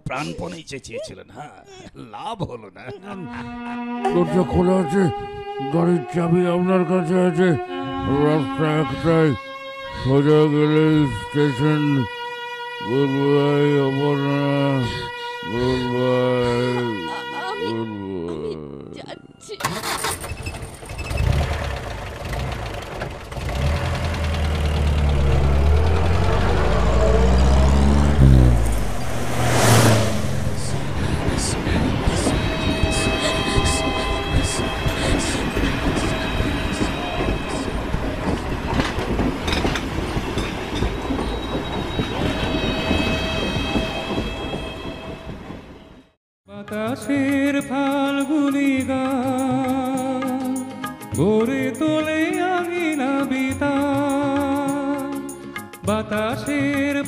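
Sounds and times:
train rumbling past: 23.4s - 46.2s
held train tones: 24.0s - 46.1s
train wheel clicks: 38.0s - 42.2s.

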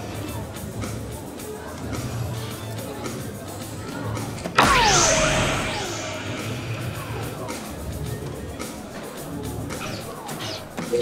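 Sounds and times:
electronic whoosh with falling tone: 4.6s - 7.6s.

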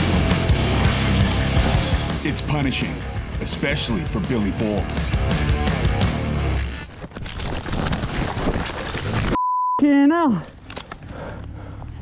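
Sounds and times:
background music: 0.0s - 6.7s.

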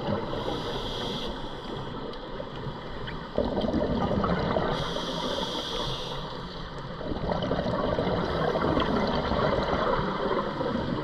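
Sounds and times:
regulator inhale hiss: 0.3s - 2.0s, 4.7s - 6.6s
exhaled bubbles gurgling: 3.1s - 5.5s, 6.8s - 11.0s.

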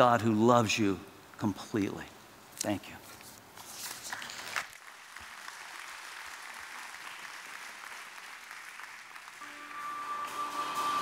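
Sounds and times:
congregation applauding lightly: 4.0s - 11.0s.

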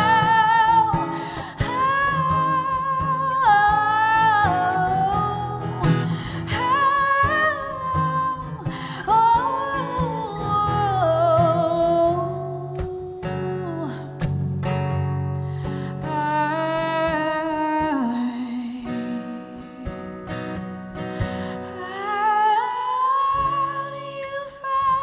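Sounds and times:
woman singing long notes: 0.0s - 14.1s
strummed acoustic guitar: 0.0s - 25.0s.

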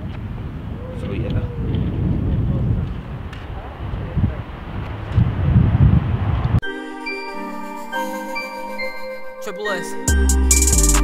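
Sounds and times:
wind rumbling on microphone: 0.0s - 6.6s
bell-like background music: 6.6s - 11.0s.

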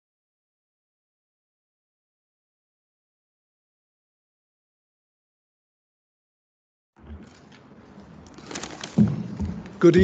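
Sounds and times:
paper rustling and handling noise: 7.2s - 9.9s.

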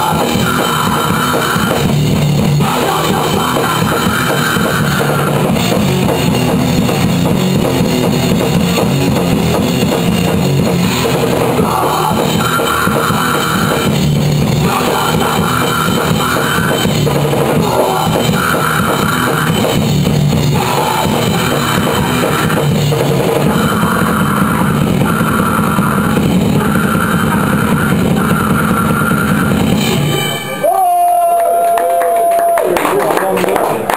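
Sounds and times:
screamed vocals: 0.0s - 1.9s, 2.6s - 5.4s, 11.6s - 13.9s, 14.6s - 16.9s, 17.6s - 19.6s, 20.6s - 22.6s, 23.4s - 29.6s, 30.6s - 32.8s
fast drum kit with cymbals: 0.0s - 30.9s
distorted guitar: 0.0s - 32.6s.

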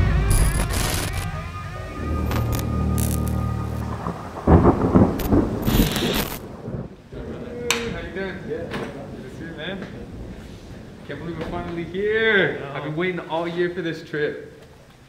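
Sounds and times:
deep ominous music drone: 0.0s - 5.6s
thunder cracks: 0.0s - 12.9s
rain: 0.0s - 15.0s.

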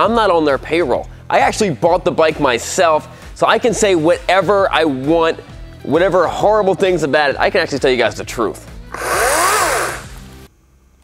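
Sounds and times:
chainsaw revving: 8.9s - 10.2s.

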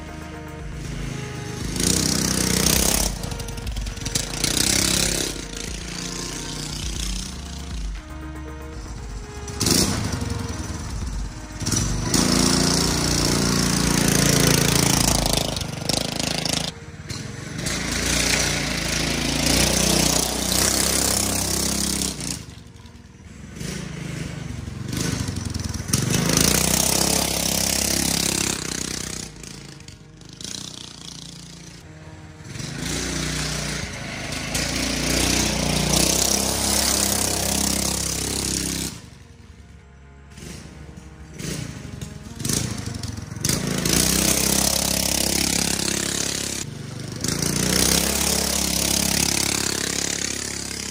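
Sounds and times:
dirt bike engine revving: 0.0s - 50.9s.

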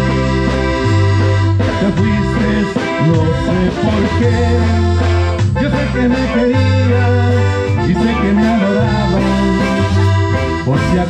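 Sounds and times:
accordion: 0.0s - 11.0s
live band playing instrumental: 0.0s - 11.0s.

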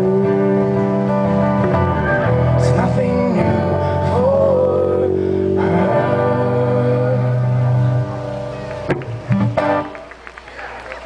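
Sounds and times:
man singing long notes: 0.0s - 1.2s, 2.3s - 8.2s
acoustic guitars strummed: 0.0s - 10.1s.

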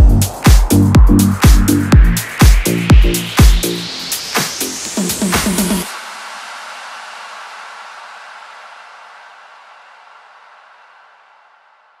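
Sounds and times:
hiss-like electronic wash: 0.2s - 11.8s.

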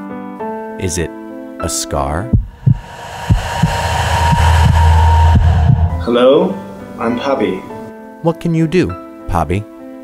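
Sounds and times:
low repeating thump: 2.4s - 6.6s
deep drone: 2.4s - 7.1s.

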